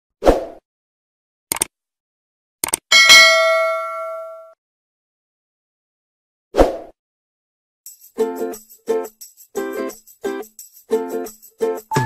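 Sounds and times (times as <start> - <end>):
notification bell ding: 2.9 - 4.6.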